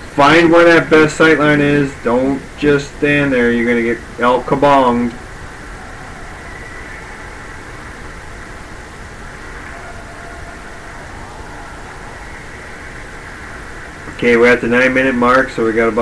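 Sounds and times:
ice rink hum: 0.0s - 16.0s.

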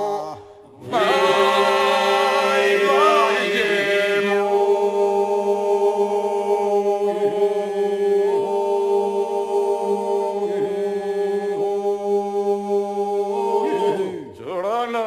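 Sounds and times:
men's group singing low drone: 0.0s - 14.2s.

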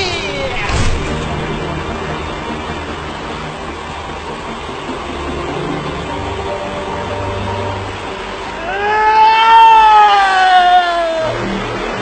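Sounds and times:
low rumbling drone: 0.0s - 9.0s
noise haze: 0.0s - 12.0s.

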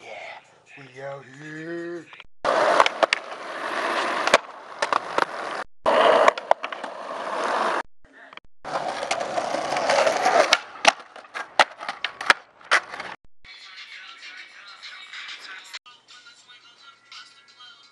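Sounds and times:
skateboard wheels rolling on concrete: 2.4s - 7.8s, 8.6s - 13.2s
skateboard clacks: 2.5s - 3.3s, 4.2s - 7.7s, 8.7s - 13.2s.

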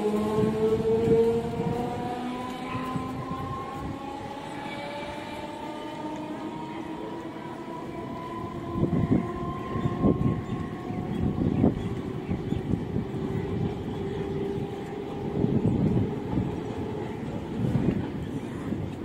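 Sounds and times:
train running rumble: 0.0s - 19.0s.

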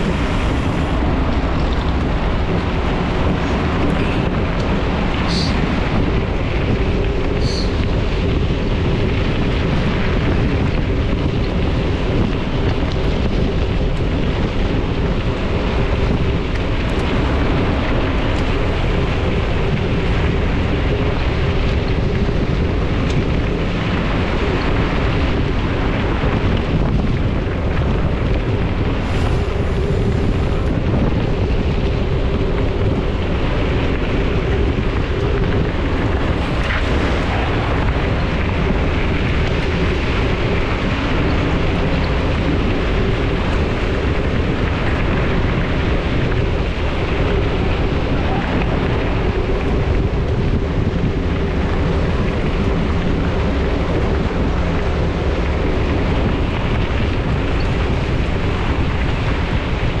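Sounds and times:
bike tyres rolling on gravel: 0.0s - 60.0s
wind buffeting microphone: 0.0s - 60.0s.

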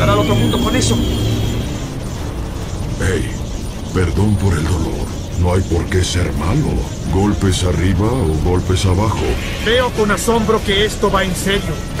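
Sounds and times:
low rumble: 0.0s - 10.5s.

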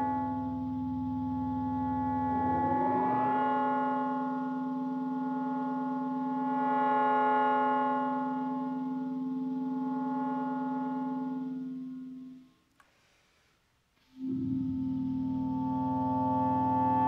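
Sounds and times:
sustained clarinet and electronic chord: 0.0s - 12.5s, 14.2s - 17.0s.

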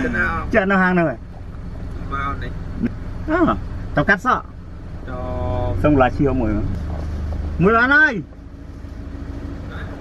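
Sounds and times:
people talking: 0.0s - 1.2s, 2.0s - 4.5s, 5.1s - 6.8s, 7.6s - 8.3s
car engine idling: 0.0s - 10.0s.

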